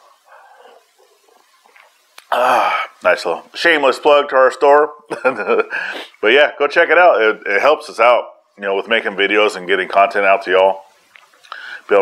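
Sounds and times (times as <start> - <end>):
dog making faint sound: 0.2 - 2.0.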